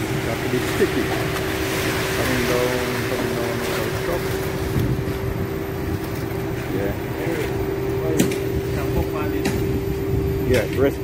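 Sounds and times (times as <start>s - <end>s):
construction machine engine droning: 0.0s - 11.0s.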